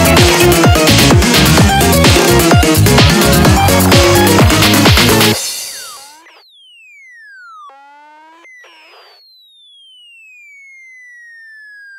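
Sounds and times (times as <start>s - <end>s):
buzzy synth chords: 0.0s - 6.4s
synthesizer tone gliding downward: 0.0s - 11.9s.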